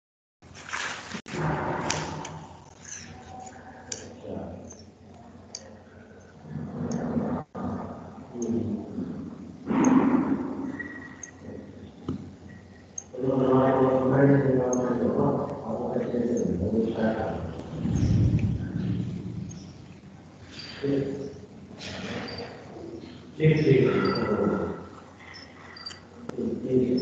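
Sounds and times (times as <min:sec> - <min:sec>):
rustling: 0:00.5 - 0:03.6
person speaking: 0:01.3 - 0:10.7, 0:11.4 - 0:27.0
indistinct voices: 0:01.3 - 0:27.0.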